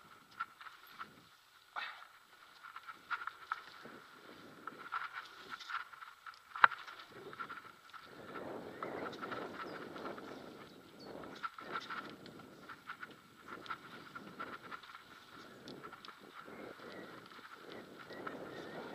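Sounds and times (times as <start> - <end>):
bike rattling and clicking: 0.0 - 1.4, 2.2 - 18.9
bike tyres rolling over dirt: 0.0 - 18.9.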